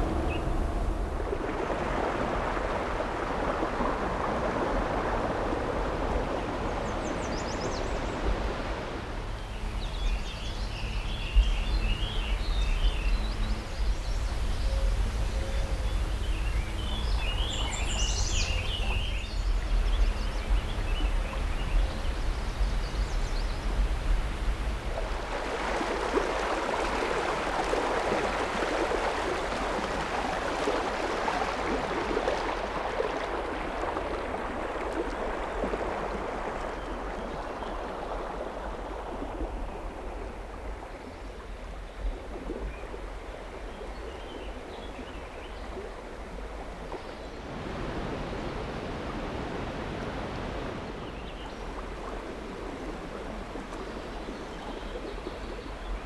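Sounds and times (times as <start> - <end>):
low rumble: 0.0 - 4.4
river water rushing: 0.0 - 11.3, 20.4 - 41.0, 45.8 - 54.4.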